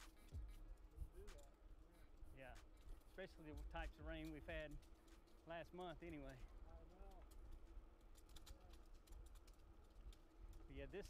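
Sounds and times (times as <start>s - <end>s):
bicycle clicking: 0.0s - 11.0s.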